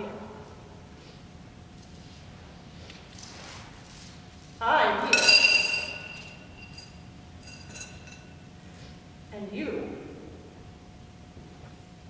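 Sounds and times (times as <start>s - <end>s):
sharp ringing clink: 5.1s - 8.4s.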